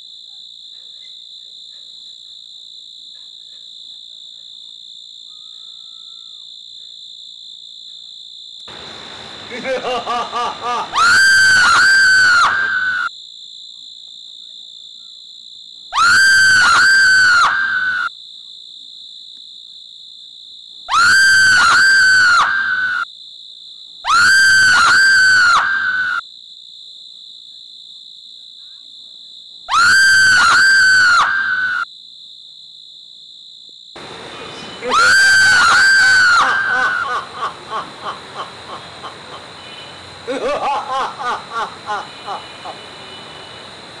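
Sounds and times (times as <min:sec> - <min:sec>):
crickets chirring: 0:00.0 - 0:44.0
high insect drone: 0:04.8 - 0:13.9, 0:15.1 - 0:44.0
man's villainous laugh: 0:09.5 - 0:11.0, 0:36.4 - 0:39.6, 0:40.2 - 0:42.8
shrill high-pitched shrieking cries: 0:10.9 - 0:13.1, 0:15.9 - 0:18.1, 0:20.9 - 0:23.0, 0:24.0 - 0:26.2, 0:29.7 - 0:31.8, 0:34.8 - 0:37.2.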